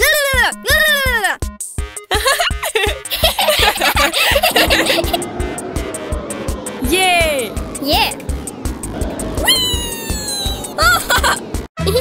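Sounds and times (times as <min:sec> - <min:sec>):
upbeat cartoon music: 0:00.0 - 0:05.6.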